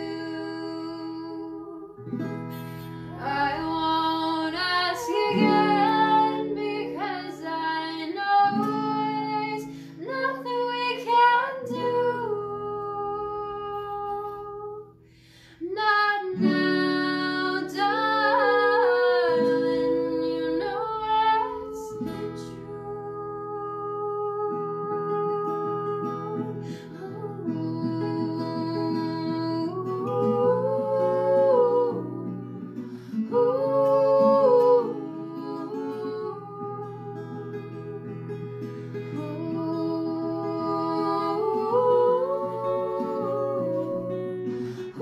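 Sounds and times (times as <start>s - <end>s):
acoustic guitar: 0.0s - 45.0s
woman singing: 0.0s - 45.0s.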